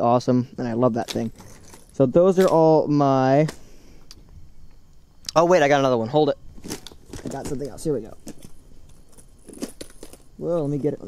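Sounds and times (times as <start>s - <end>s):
lures rattling and clicking: 1.0s - 2.6s.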